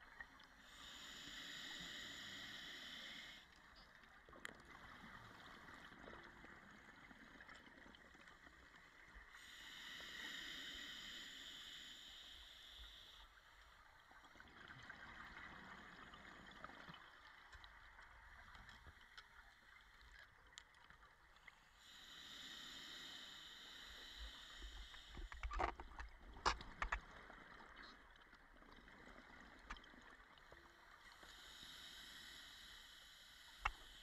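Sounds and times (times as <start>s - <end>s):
regulator breathing hiss: 0.6s - 3.5s, 9.3s - 13.5s, 21.8s - 25.4s, 31.2s - 34.0s.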